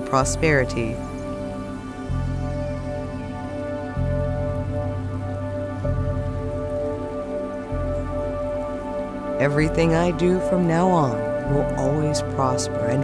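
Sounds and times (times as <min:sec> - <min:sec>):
deep low synth note: 0:00.0 - 0:13.0
sustained synth pad tones: 0:00.0 - 0:13.0
soft rain-like hiss: 0:00.2 - 0:13.0.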